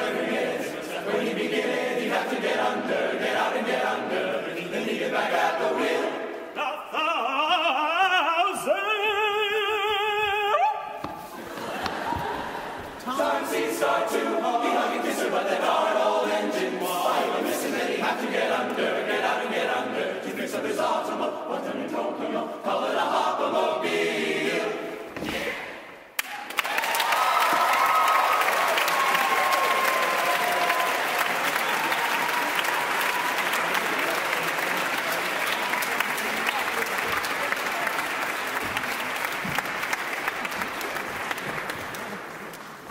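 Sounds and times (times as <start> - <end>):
men's a cappella chorus singing: 0.0 - 10.6, 13.0 - 25.8
audience whooping: 26.2 - 34.2
audience applause: 26.2 - 42.9.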